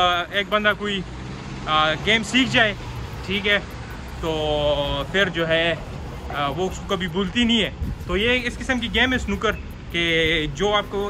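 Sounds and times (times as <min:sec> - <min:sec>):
man talking: 0:00.0 - 0:11.0
road traffic hum: 0:00.0 - 0:11.0.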